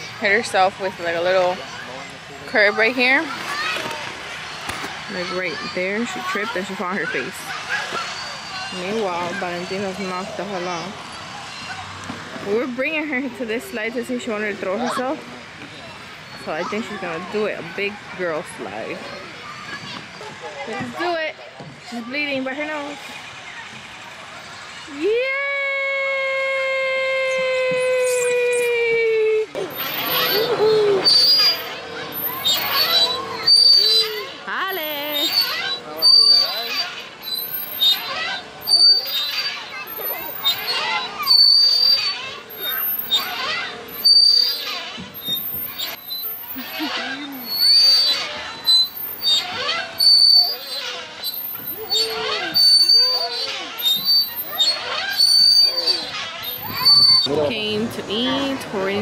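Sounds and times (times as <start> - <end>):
young children calling: 24.8 - 57.4
brief high squeaks: 27.5 - 29.0, 29.6 - 57.4.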